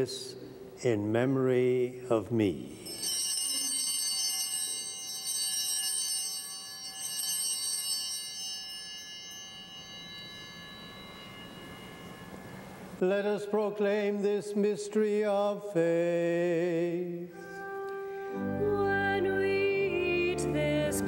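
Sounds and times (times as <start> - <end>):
altar bells ringing: 2.7 - 13.6.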